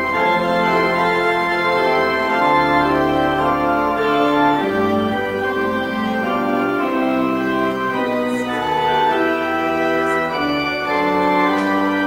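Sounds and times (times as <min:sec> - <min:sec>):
organ playing a hymn: 0:00.0 - 0:12.0.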